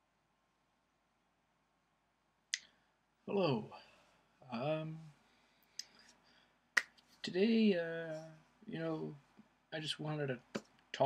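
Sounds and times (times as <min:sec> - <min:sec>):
finger snap: 0:02.5 - 0:02.7, 0:05.8 - 0:06.0, 0:06.8 - 0:07.1.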